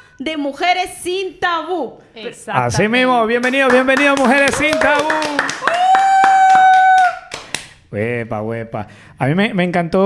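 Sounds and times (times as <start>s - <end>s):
hands clapping: 3.3s - 7.8s
high held vocal cheer: 4.5s - 7.3s.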